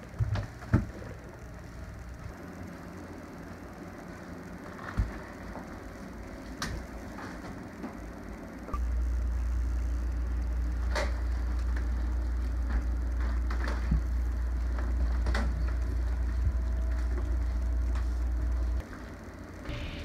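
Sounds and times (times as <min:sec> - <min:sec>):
loud low rumble: 0:19.7 - 0:20.0.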